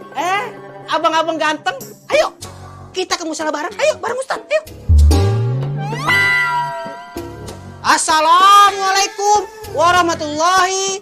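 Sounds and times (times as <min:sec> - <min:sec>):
low note gliding upward: 0:04.9 - 0:06.7
high wailing note: 0:04.9 - 0:06.8.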